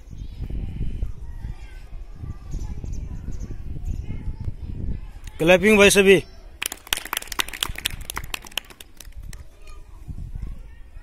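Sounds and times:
people clapping: 6.6s - 9.5s.

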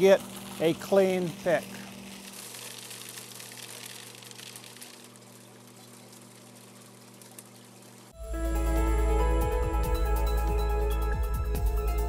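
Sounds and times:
water pouring into colander: 0.0s - 8.1s.

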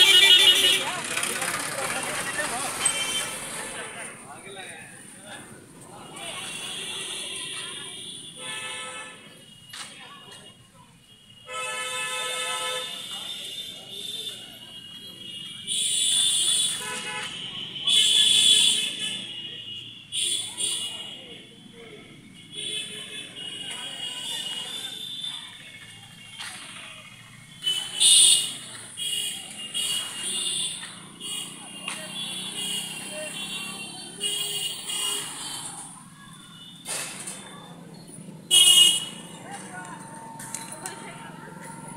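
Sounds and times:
vehicle horn honking: 0.0s - 0.9s, 6.3s - 9.2s, 11.3s - 21.0s, 38.5s - 39.3s
vehicle traffic: 0.0s - 41.9s
voices: 0.0s - 41.9s.

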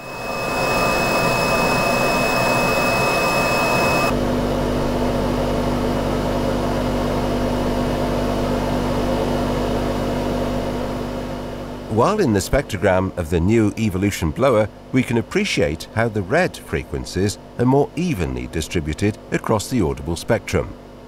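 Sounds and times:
blower high-pitched whistle: 0.0s - 4.1s
blower rushing with low hum: 0.0s - 21.0s.

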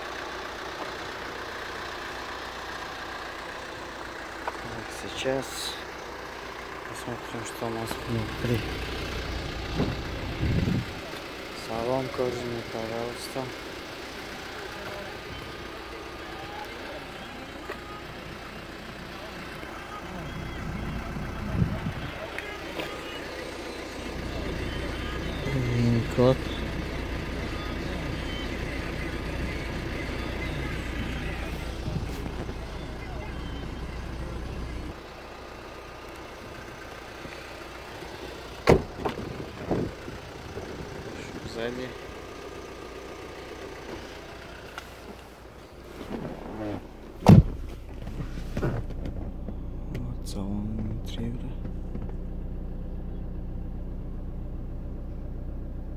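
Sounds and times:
car door knocks: 38.6s - 39.8s, 47.2s - 47.8s
car door handling noises: 38.6s - 40.0s, 45.9s - 50.0s.

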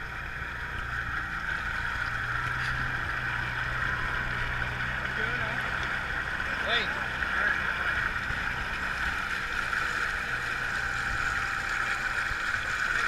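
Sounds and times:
utility vehicle engine running: 0.0s - 13.0s.

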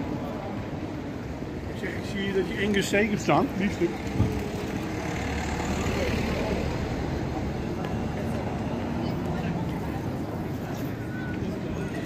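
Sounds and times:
passers-by talking: 0.0s - 12.0s
street noise: 0.0s - 12.0s.

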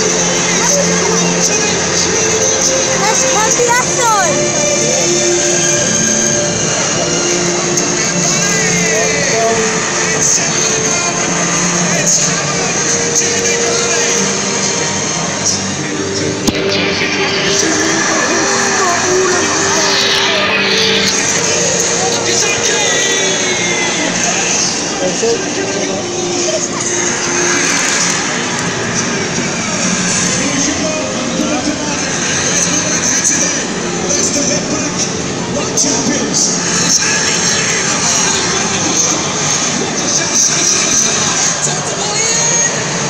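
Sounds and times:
slow melody of long notes: 0.0s - 31.9s
stadium crowd voices: 0.0s - 43.0s.

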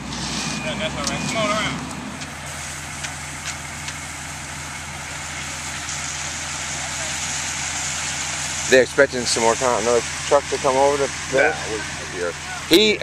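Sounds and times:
diesel truck engine running: 0.0s - 13.0s.

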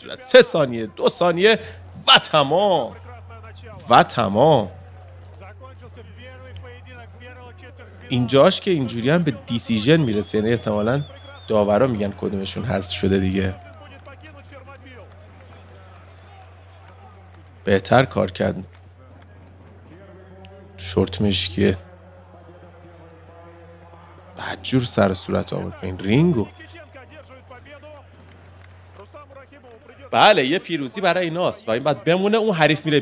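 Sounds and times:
steady low hum: 0.0s - 15.7s
faint voices: 0.0s - 28.3s.

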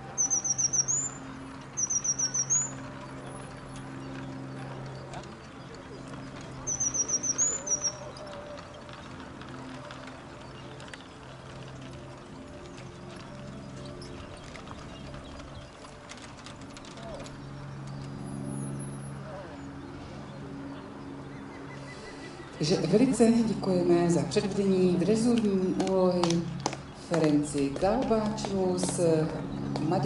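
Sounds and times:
songbird singing: 0.0s - 30.0s.

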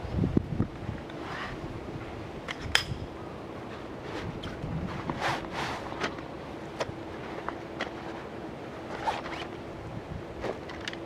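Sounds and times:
nylon fabric rustling: 7.1s - 9.5s.

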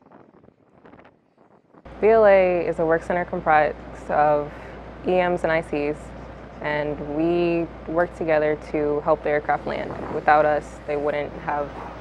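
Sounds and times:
wind gusts on microphone: 0.0s - 3.9s, 9.2s - 12.0s
low steady rumble: 0.0s - 12.0s.

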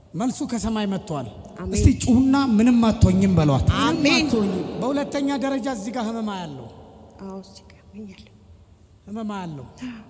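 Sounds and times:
person speaking into a microphone: 1.4s - 6.6s.

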